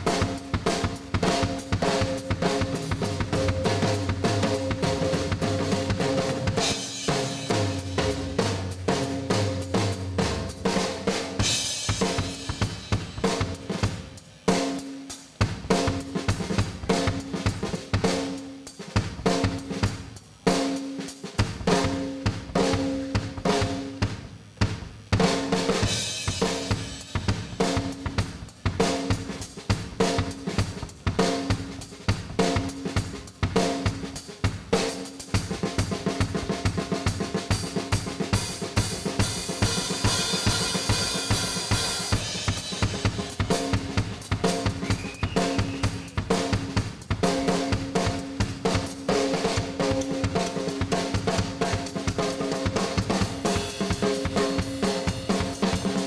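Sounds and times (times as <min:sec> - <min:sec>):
rock drum solo: 0:00.0 - 0:56.0
cymbals crashing: 0:39.2 - 0:46.7.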